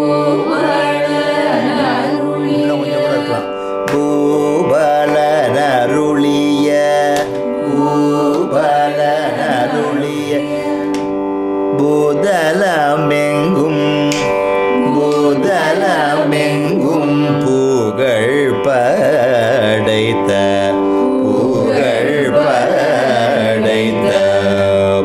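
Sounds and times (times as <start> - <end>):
group of voices singing: 0.0 - 25.0.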